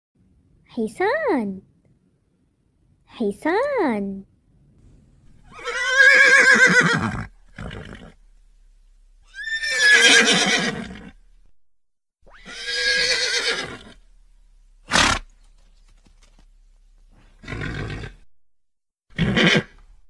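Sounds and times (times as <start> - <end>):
horse whinnying: 5.4 - 8.2, 9.3 - 11.2, 12.2 - 14.0, 14.9 - 15.3, 17.4 - 18.3, 19.1 - 19.8.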